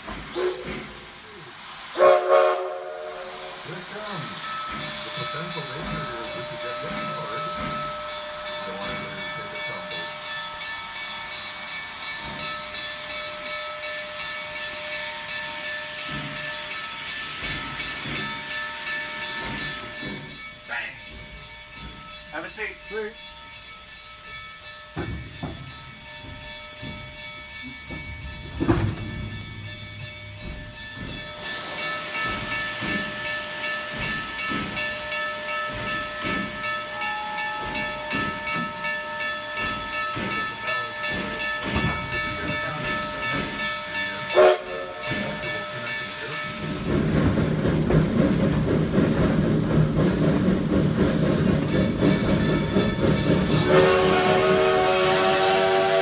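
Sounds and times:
steam hissing: 0.0 - 56.0
steam locomotive exhaust chuffs: 0.0 - 56.0.

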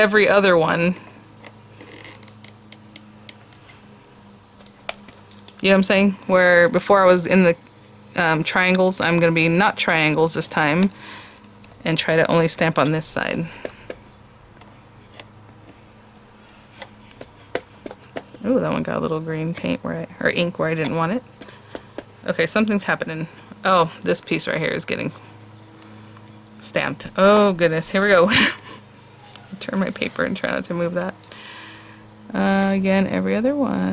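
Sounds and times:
faint steady hum: 0.0 - 33.9
rubber stamp tapping ink pad: 16.8 - 18.4.

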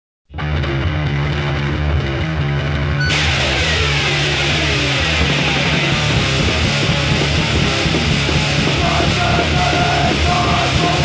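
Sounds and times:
bass guitar low notes: 0.3 - 11.0
distorted electric guitar: 0.3 - 11.0.

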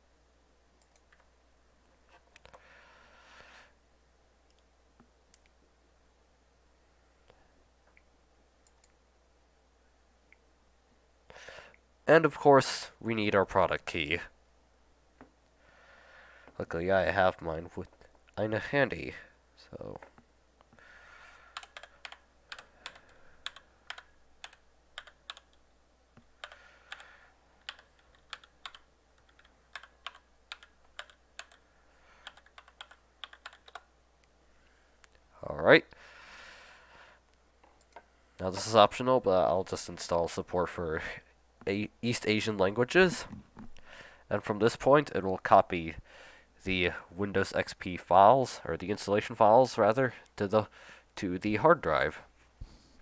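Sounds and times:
faint low hum: 0.0 - 53.0
computer mouse clicks: 0.8 - 1.3, 7.9 - 9.0, 21.5 - 25.6, 26.2 - 31.6, 32.2 - 33.9.

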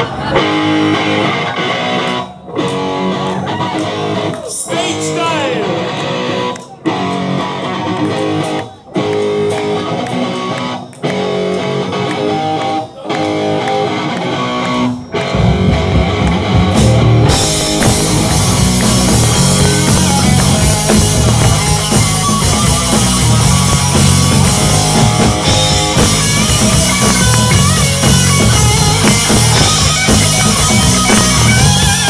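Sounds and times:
bass guitar: 0.0 - 32.0
drums: 0.0 - 32.0
electric guitar riff: 0.0 - 32.0.

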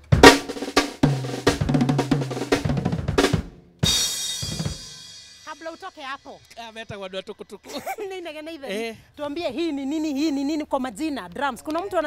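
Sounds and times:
drum fill: 0.0 - 6.2
cymbal crash: 3.8 - 6.4.

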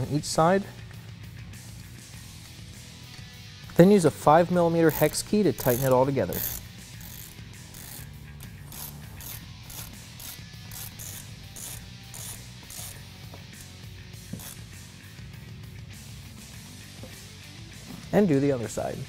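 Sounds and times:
background music: 0.0 - 19.0
hand ratchet clicking: 4.7 - 14.8.

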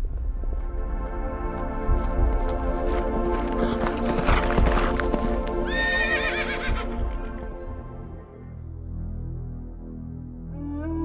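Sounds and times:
background music: 0.0 - 11.0
hoofbeats: 0.5 - 7.7
horse whinnying: 5.7 - 7.0.

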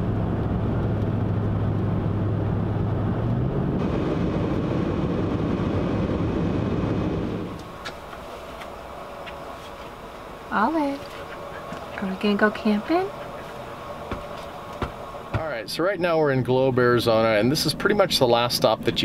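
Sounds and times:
car road noise and engine hum: 0.0 - 15.8.

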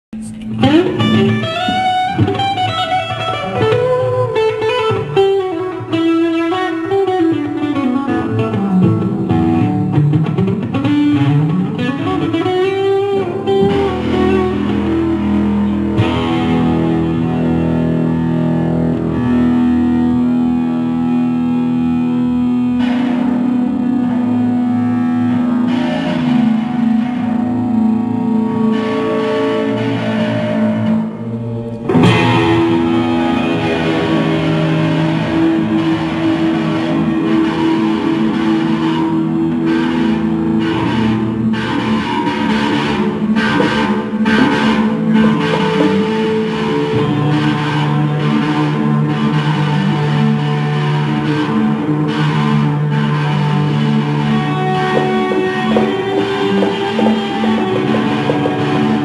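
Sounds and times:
electric guitar with effects: 0.1 - 59.0.

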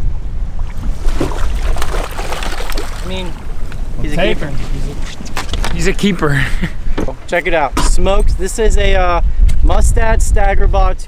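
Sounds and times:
wind buffeting microphone: 0.0 - 11.0
water washing against hull: 0.5 - 6.0
fish splashing at surface: 0.7 - 3.5.

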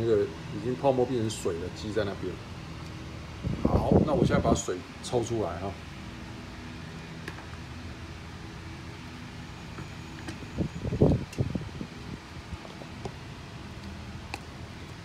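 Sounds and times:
machinery humming: 0.0 - 15.0.

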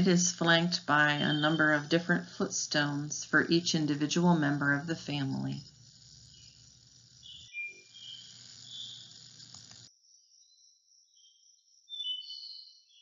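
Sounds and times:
low background hiss: 0.0 - 9.8
faint insect chirping: 0.0 - 13.0.

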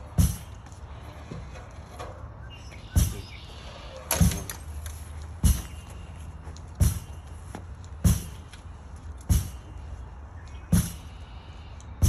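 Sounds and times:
ball smacking rebounder and stick: 8.0 - 8.4.

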